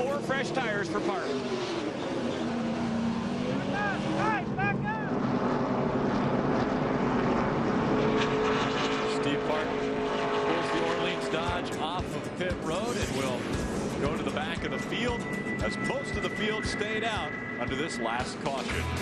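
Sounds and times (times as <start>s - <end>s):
race truck engine drone: 0.0s - 19.0s.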